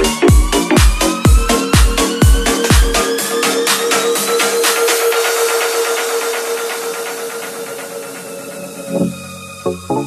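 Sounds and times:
pulsing noise hiss: 0:01.0 - 0:09.6.

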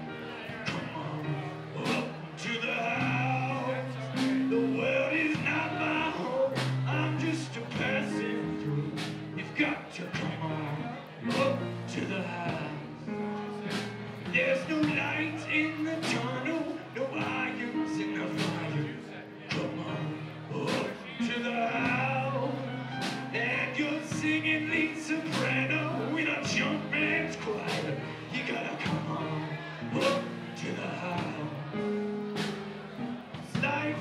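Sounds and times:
live rock band playing: 0:01.6 - 0:34.0
drum and cymbal strikes: 0:08.9 - 0:09.3, 0:13.7 - 0:14.1, 0:32.4 - 0:32.8.

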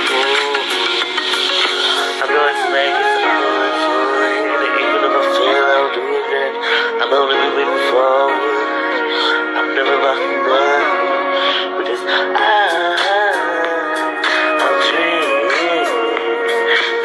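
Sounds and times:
person singing: 0:00.0 - 0:17.0
pop backing track: 0:00.0 - 0:17.0.

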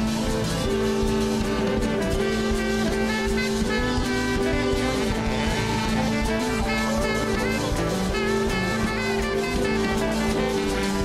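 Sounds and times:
worship band music: 0:00.0 - 0:11.0.

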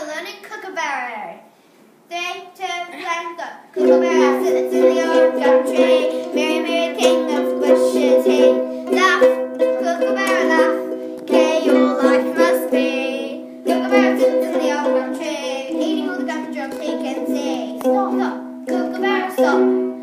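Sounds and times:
ukuleles strumming: 0:03.0 - 0:20.0
children singing: 0:03.8 - 0:20.0.

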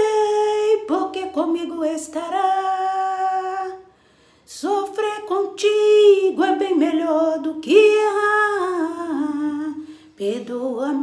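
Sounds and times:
woman singing a hymn: 0:00.0 - 0:03.9, 0:04.5 - 0:11.0.

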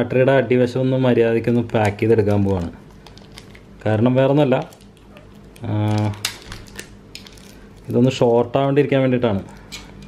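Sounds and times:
man speaking: 0:03.8 - 0:04.8, 0:05.6 - 0:06.2, 0:07.9 - 0:09.6.

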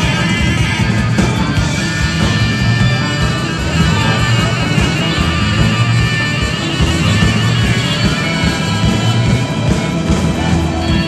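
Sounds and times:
rock band playing loud: 0:00.0 - 0:11.0.

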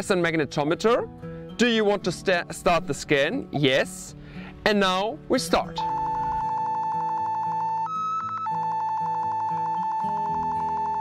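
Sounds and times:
metal detector pulsing beep: 0:05.8 - 0:11.0.

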